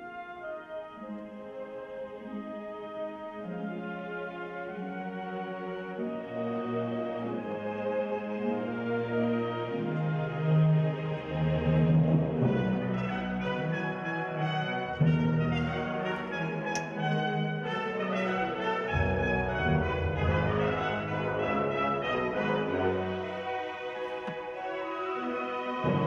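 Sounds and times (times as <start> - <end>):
bowed double basses and cellos: 0.0 - 26.0
french horns: 0.0 - 26.0
full orchestra playing: 0.0 - 26.0.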